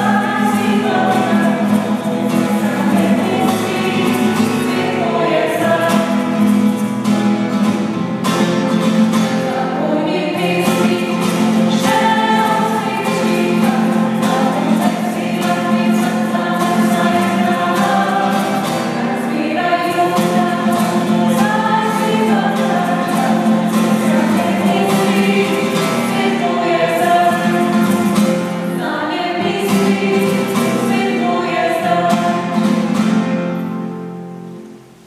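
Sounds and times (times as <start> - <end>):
vocal group singing: 0.0 - 7.0, 9.2 - 33.2
acoustic guitar: 0.0 - 35.0.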